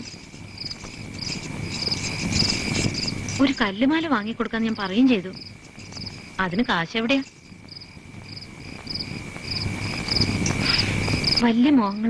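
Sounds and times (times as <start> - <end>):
crickets chirping: 0.0 - 12.0
high insect trill: 0.0 - 12.0
hiss: 7.9 - 11.9.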